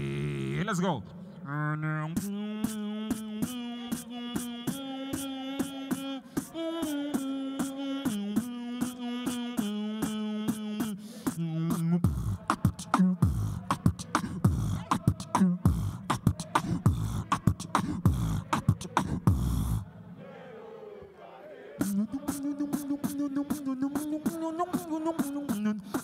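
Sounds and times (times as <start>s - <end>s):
person beatboxing: 2.0s - 19.8s, 21.8s - 26.0s.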